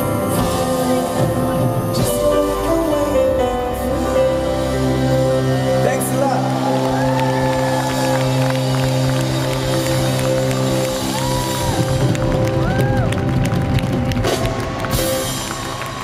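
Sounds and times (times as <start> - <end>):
live band sustained chord: 0.0 - 16.0
crowd cheering and whooping: 5.2 - 16.0.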